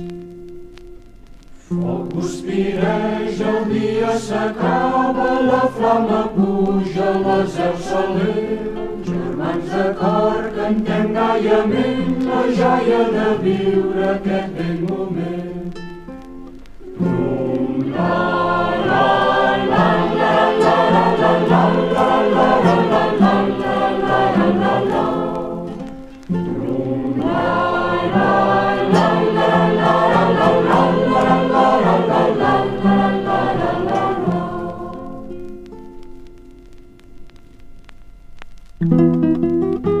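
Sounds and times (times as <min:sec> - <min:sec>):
group singing folk song: 0:01.6 - 0:35.6.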